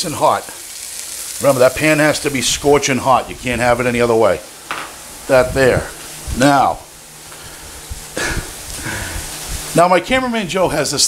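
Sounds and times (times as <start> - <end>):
meat sizzling in pans: 0.0 - 11.0
person chuckling: 8.2 - 9.3.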